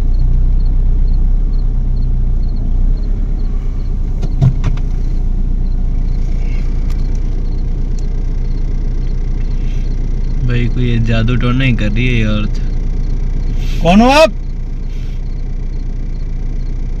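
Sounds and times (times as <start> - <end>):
engine idling hum: 0.0 - 17.0.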